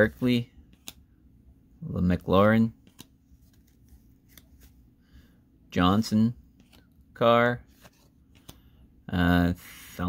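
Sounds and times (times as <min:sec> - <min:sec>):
trading cards clicking and rustling: 0:02.7 - 0:04.8, 0:07.7 - 0:08.6.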